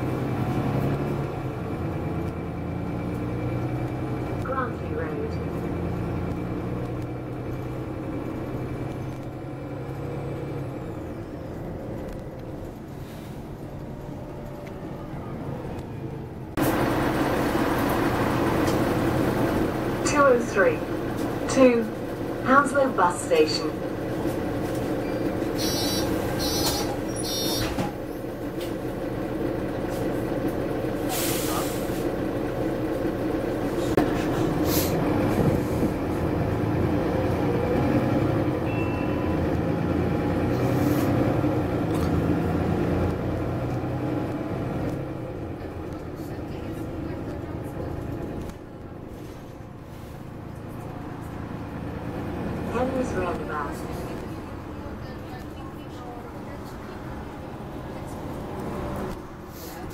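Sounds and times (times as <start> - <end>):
bus engine accelerating: 0.0 - 59.9
short beeps: 38.6 - 39.4.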